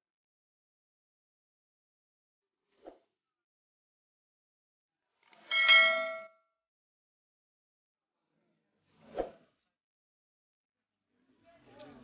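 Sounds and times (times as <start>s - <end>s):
bright bell ding: 5.5s - 6.4s.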